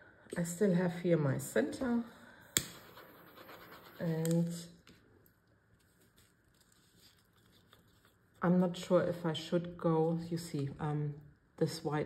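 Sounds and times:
cup and tools scratching: 0:02.6 - 0:04.6.

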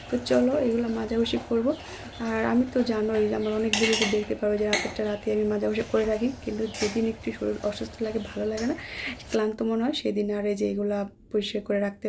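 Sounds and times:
metal dishes clinking and scraping: 0:03.4 - 0:04.9.

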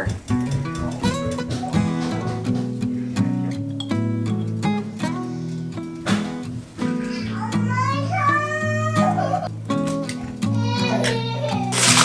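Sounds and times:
acoustic guitar music: 0:00.0 - 0:12.0
cat meowing: 0:06.9 - 0:09.5.

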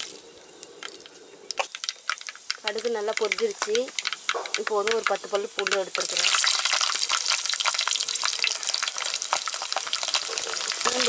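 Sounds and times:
garlic sizzling in hot oil: 0:00.0 - 0:11.0.

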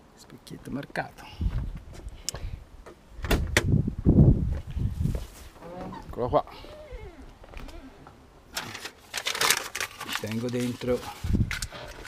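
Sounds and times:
rustling of things handled: 0:04.6 - 0:12.0.

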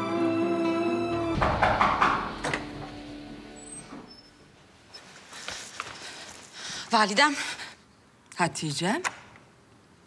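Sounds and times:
sharp hits: 0:01.3 - 0:03.0.

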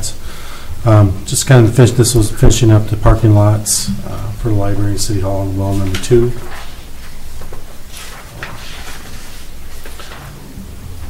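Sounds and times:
paper rustling and turning: 0:05.6 - 0:11.0.

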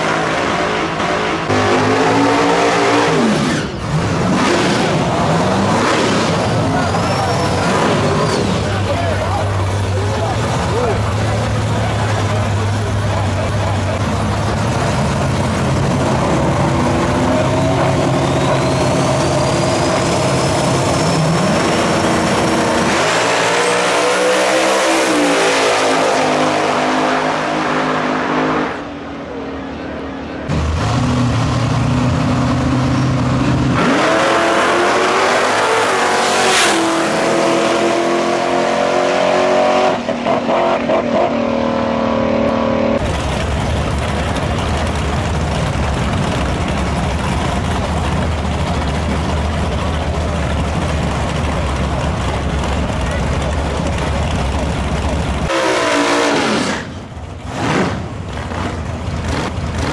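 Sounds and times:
drag cars accelerating hard: 0:00.0 - 0:29.3, 0:30.4 - 0:59.9
drag cars idling at line: 0:03.2 - 0:23.0, 0:28.9 - 0:33.8, 0:43.0 - 0:59.9.

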